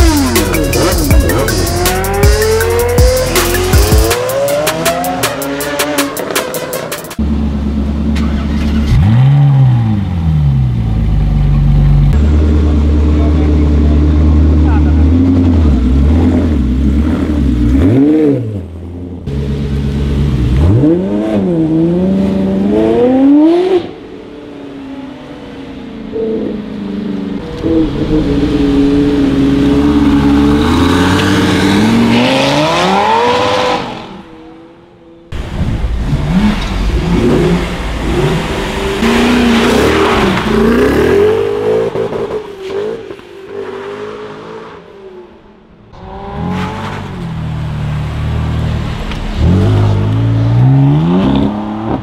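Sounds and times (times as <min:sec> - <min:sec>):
electronic music with sweeping effects: 0:00.0 - 0:07.2
sports car engine revving: 0:00.0 - 0:24.2, 0:26.1 - 0:52.0.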